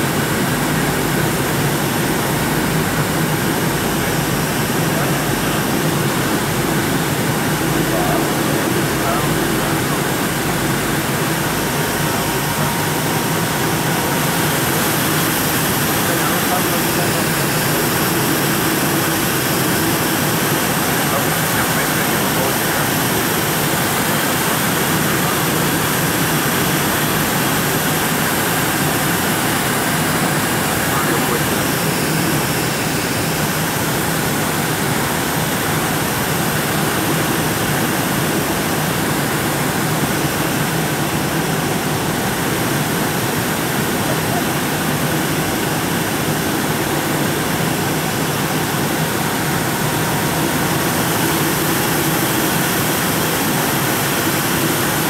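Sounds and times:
jet cabin engine rush: 0.0s - 55.0s.

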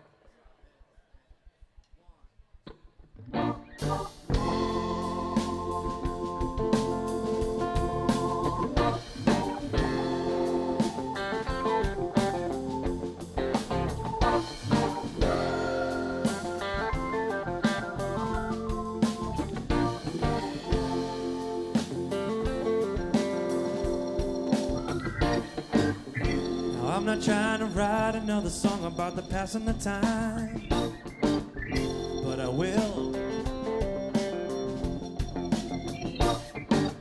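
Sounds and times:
keyboards: 2.6s - 37.0s
bass: 2.7s - 37.0s
electric guitar picking quick runs: 2.7s - 37.0s
drum kit: 3.3s - 37.0s.

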